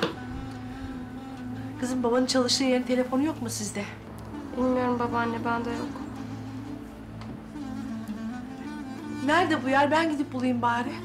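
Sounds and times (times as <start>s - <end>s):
low string drone: 0.0s - 11.0s.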